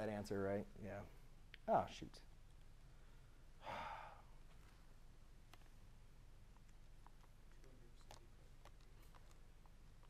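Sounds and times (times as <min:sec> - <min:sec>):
man sighing: 0:03.6 - 0:04.4.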